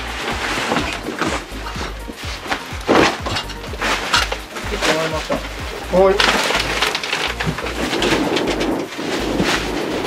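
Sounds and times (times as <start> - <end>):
paper bundles and boxes rustling: 0.0 - 10.0.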